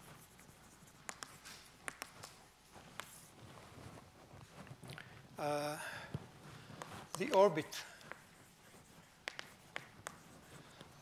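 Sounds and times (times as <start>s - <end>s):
chalk taps: 0.0s - 3.3s, 6.1s - 11.0s
chalk scratching on chalkboard: 0.0s - 4.0s, 6.8s - 11.0s.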